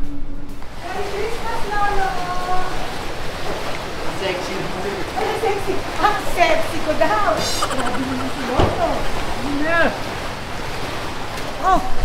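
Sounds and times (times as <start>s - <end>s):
running water rushing: 0.5s - 12.0s.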